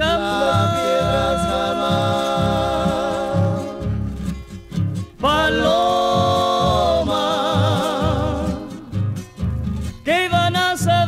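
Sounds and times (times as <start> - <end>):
held vocal harmony: 0.0 - 4.4, 5.1 - 9.2
harp and acoustic guitars plucking: 0.0 - 11.0.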